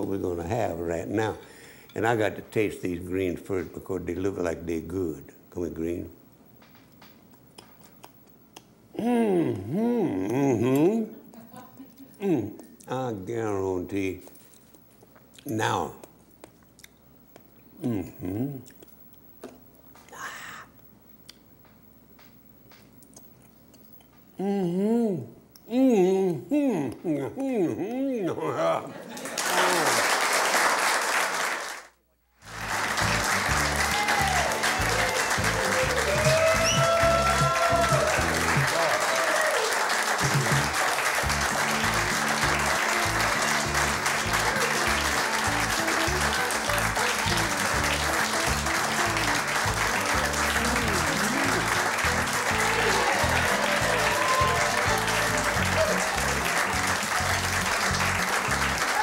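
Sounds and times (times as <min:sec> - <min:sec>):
applause: 0:29.2 - 0:59.0
guitar music: 0:40.2 - 0:58.8.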